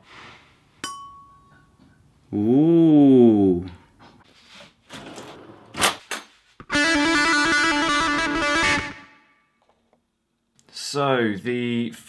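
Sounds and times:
ceramic pot clink and ringing: 0:00.8 - 0:01.8.

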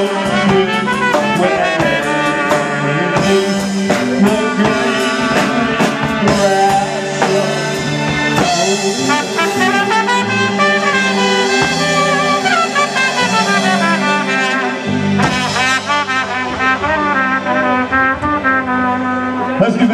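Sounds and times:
drum kit and backing band: 0:00.0 - 0:19.9
trumpet playing a melody: 0:00.0 - 0:19.9.

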